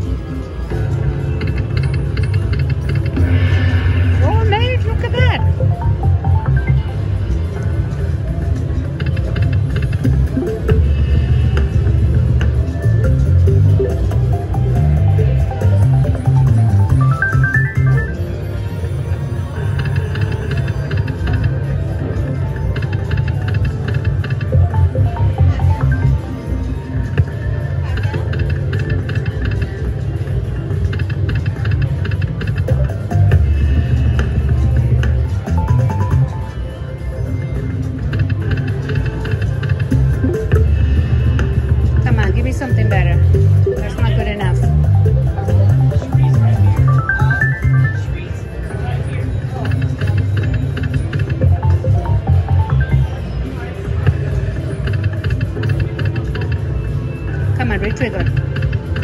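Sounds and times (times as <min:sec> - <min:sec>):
slot machine bonus music: 0:01.2 - 0:08.2, 0:10.0 - 0:10.9, 0:12.6 - 0:21.6, 0:22.2 - 0:27.0, 0:32.6 - 0:33.9, 0:34.5 - 0:37.3, 0:39.8 - 0:41.0, 0:42.3 - 0:48.3, 0:51.0 - 0:53.6
murmur of voices: 0:03.2 - 0:59.0
slot reels clicking and chiming: 0:04.6 - 0:07.3, 0:12.7 - 0:18.2, 0:22.3 - 0:27.4, 0:42.2 - 0:48.2, 0:49.8 - 0:53.4
low throbbing beat: 0:39.9 - 0:47.8.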